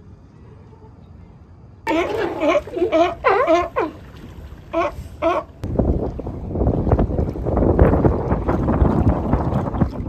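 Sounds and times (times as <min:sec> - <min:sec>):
sea lions barking: 0:01.9 - 0:05.6.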